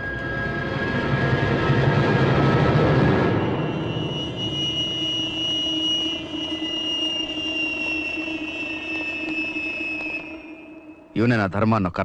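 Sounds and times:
high whining tones sinking in pitch: 0.0s - 11.6s
steady droning noise: 0.0s - 12.0s.

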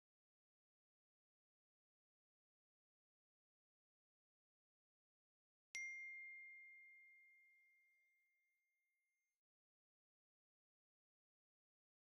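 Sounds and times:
faint high bell ding: 5.8s - 8.5s.

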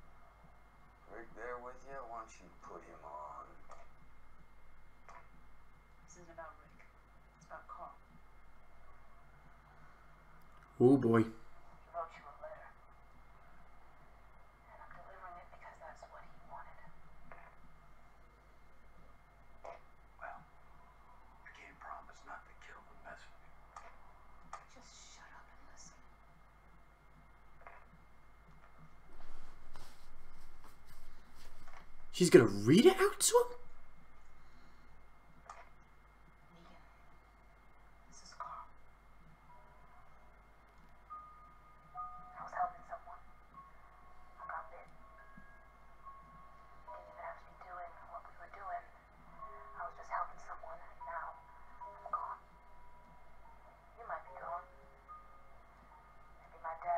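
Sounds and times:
faint television dialogue: 0.0s - 56.9s.

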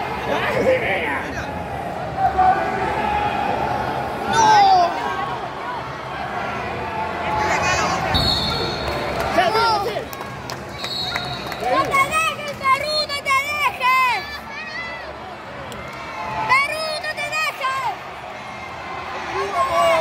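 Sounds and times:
spectators shouting encouragement: 15.8s - 20.0s.

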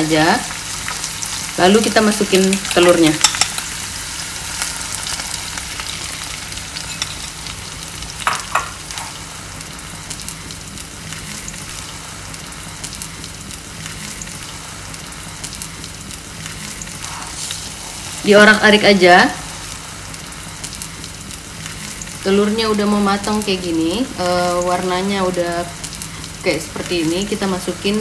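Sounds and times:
egg sizzling in a pan: 0.0s - 28.0s.

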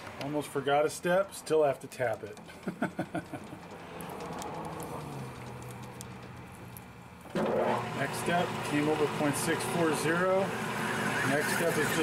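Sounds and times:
man laughing: 2.5s - 3.7s
metal lathe running: 7.3s - 12.0s.

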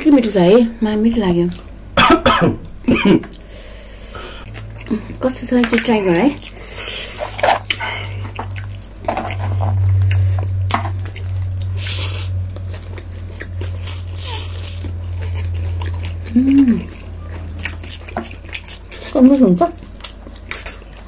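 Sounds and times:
low steady hum: 0.0s - 21.0s
wet chewing: 4.4s - 21.0s
person humming mm: 16.3s - 17.0s.

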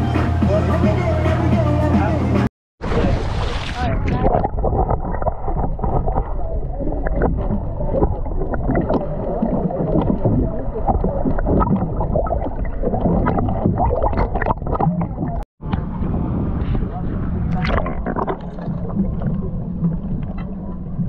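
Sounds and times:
underwater wash of water: 2.8s - 21.0s
small underwater crackles and clicks: 4.1s - 15.8s, 17.5s - 21.0s.

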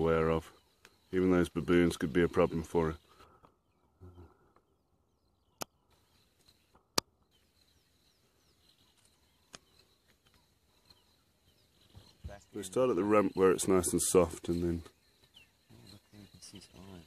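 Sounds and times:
high bird chirps: 0.0s - 17.0s
sharp clicks: 5.6s - 6.0s.

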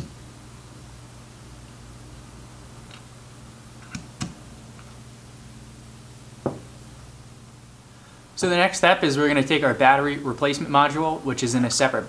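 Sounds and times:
dull knock: 6.4s - 6.7s.

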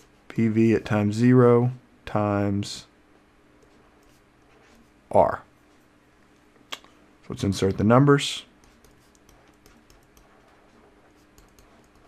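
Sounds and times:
faint low hum: 0.0s - 12.0s
stylus tapping on tablet: 8.6s - 10.4s.

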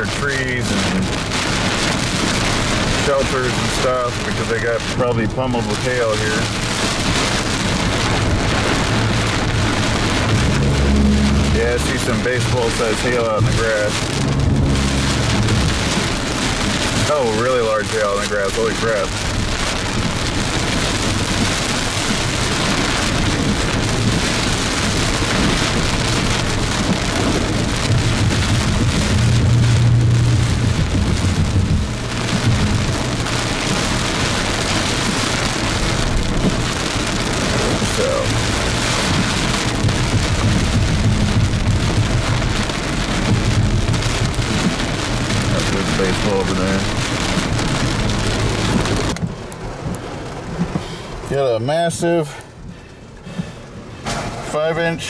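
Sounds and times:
heavy rain drumming on car roof: 0.0s - 55.0s
tyre and road rumble: 0.0s - 55.0s.

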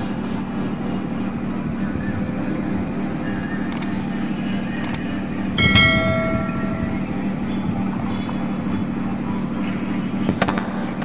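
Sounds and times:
notification bell chime: 5.6s - 7.1s.

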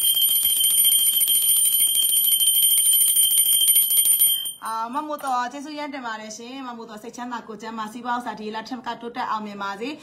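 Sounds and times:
high-pitched electric bell ringing: 0.0s - 4.8s.

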